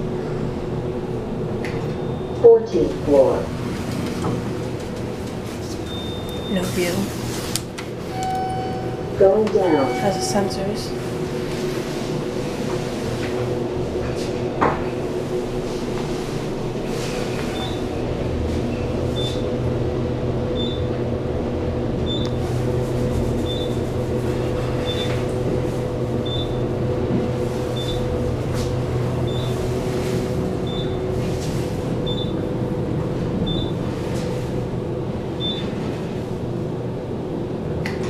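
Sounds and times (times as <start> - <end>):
elevator hum and rush: 0.0 - 38.0
short high beep: 8.1 - 10.9.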